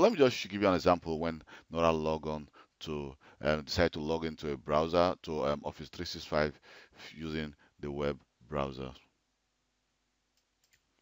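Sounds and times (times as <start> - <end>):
very faint clicks: 10.3 - 11.0.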